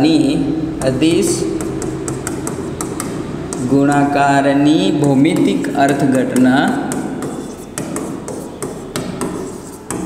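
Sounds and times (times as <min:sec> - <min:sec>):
writing taps and scratches on board: 0:00.8 - 0:10.0.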